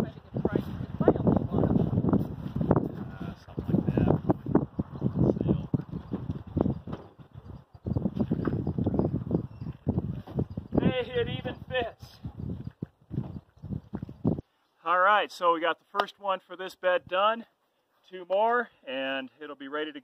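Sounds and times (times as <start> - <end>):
wooden frame knocking and thudding: 5.7 - 10.8.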